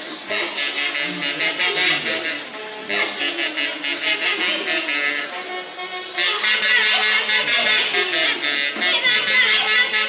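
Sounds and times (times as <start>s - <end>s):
live band with saxophones: 0.0s - 10.0s.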